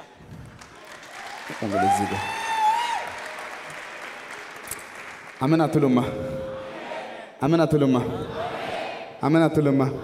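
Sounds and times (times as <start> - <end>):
congregation clapping: 0.0 - 5.8.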